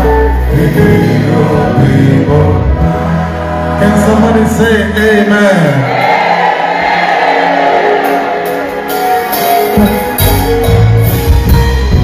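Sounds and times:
group singing gospel: 0.0 - 4.6, 5.9 - 9.1
instrumental backing with bass: 0.0 - 5.2, 7.8 - 12.0.

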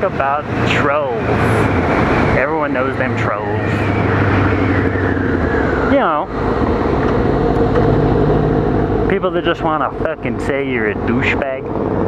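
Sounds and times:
motorcycle engine running: 0.0 - 12.0
wind noise on microphone: 1.2 - 9.1.

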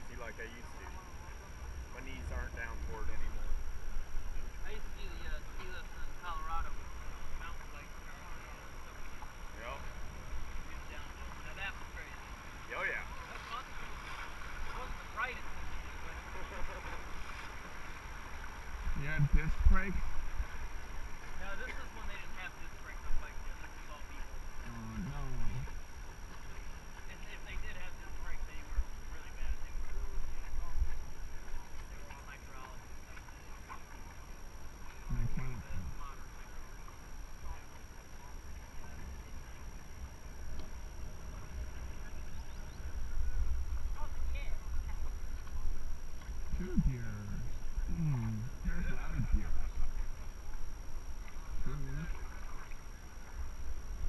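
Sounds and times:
river current rushing: 0.0 - 48.8
wind rumble on microphone: 18.4 - 21.2, 24.6 - 25.9, 35.0 - 36.2, 38.6 - 54.0
muffled voices: 35.0 - 39.7, 43.8 - 50.5.

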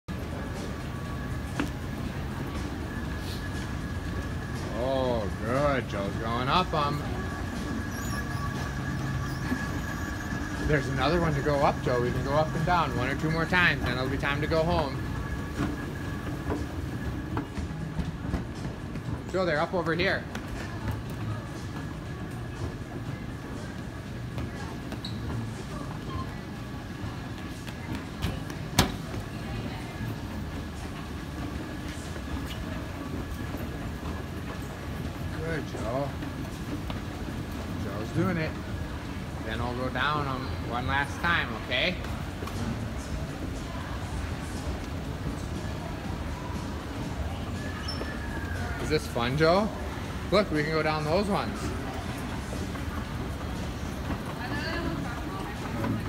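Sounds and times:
thin constant whine: 0.1 - 19.2
escalator mechanical hum: 0.1 - 56.0
shop noise: 0.1 - 56.0.

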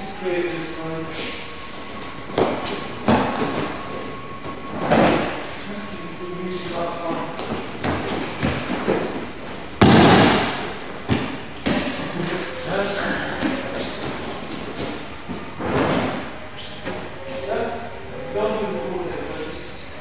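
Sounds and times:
voices in hall: 0.0 - 20.0.

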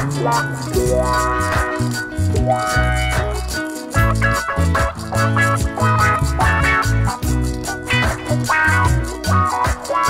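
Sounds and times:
electric guitar playing: 0.0 - 10.0
held bass notes: 0.0 - 10.0
rapid shaker-like rattle: 0.0 - 10.0.

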